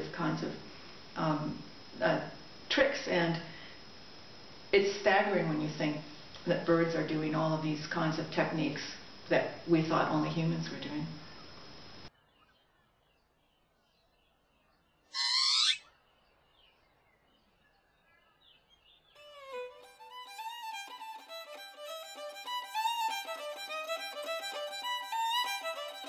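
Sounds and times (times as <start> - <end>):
bird whistled call: 15.2 - 15.9
violin melody: 19.2 - 26.0.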